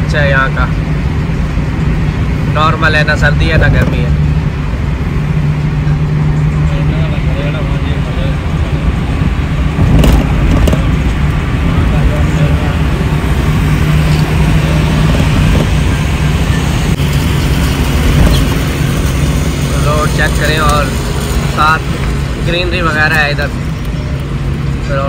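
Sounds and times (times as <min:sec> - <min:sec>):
engine and road noise drone: 0:00.0 - 0:25.0.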